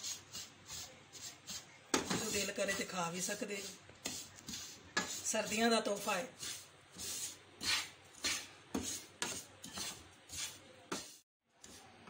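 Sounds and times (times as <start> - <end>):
wooden spatula scraping frying pan: 0.0 - 11.8.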